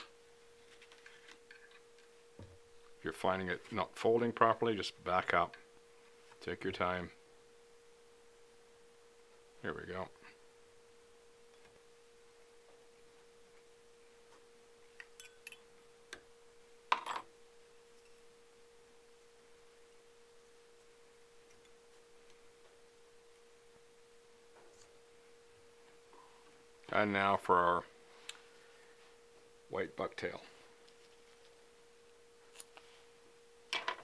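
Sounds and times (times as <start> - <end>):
faint steady humming tone: 0.0 - 34.0.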